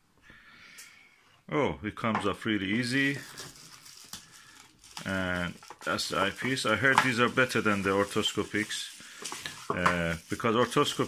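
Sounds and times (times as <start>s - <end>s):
bubble wrap crinkling: 2.6s - 11.0s.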